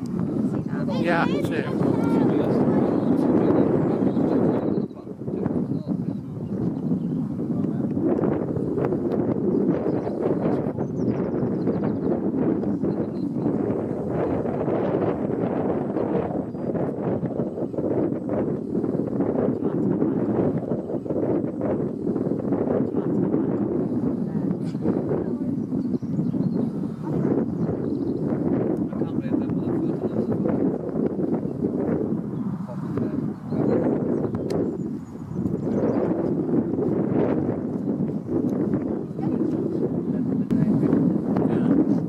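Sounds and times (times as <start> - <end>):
wind buffeting microphone: 0.0 - 42.0
indistinct voices: 0.5 - 6.3.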